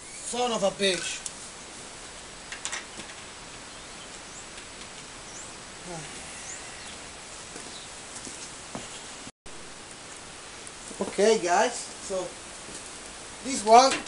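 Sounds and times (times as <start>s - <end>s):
outdoor background noise: 0.0s - 14.0s
faint bird chirps: 5.2s - 7.1s.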